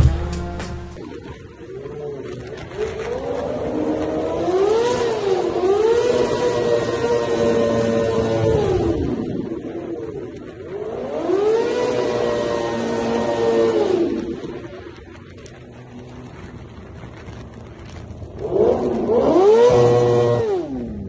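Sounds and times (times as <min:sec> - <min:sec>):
motorcycle engine revving in tunnel: 0:01.0 - 0:21.0.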